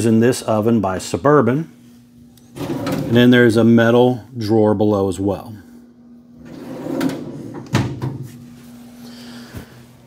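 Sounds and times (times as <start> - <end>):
metal drawer sliding on runners: 2.6 - 3.2, 6.4 - 8.3.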